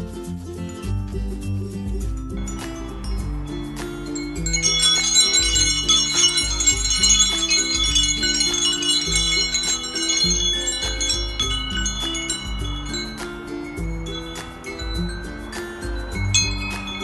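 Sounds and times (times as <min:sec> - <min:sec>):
metal wind chime ringing: 0:00.7 - 0:17.0
bird pecking at wind chime: 0:02.2 - 0:17.0.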